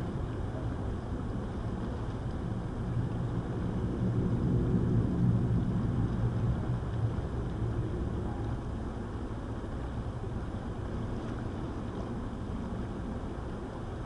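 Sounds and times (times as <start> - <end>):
river water rushing over a riffle: 0.0 - 14.0.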